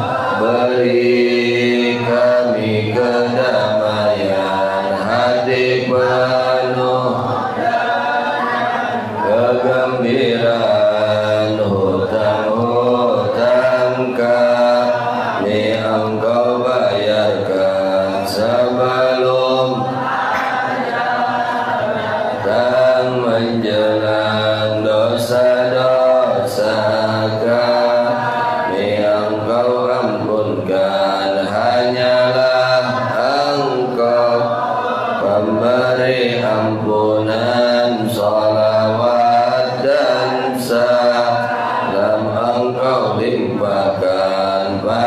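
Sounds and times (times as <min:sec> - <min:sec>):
man chanting through microphone: 0:00.0 - 0:45.0.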